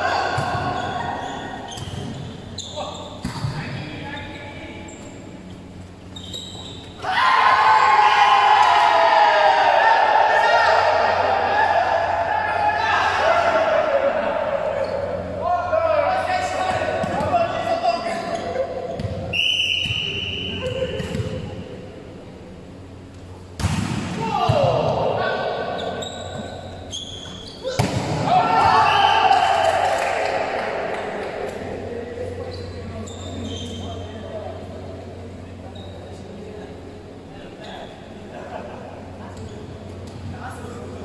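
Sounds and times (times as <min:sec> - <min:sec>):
players' voices and calls: 0:00.0 - 0:41.0
volleyball strikes: 0:23.6 - 0:25.2, 0:27.2 - 0:29.0.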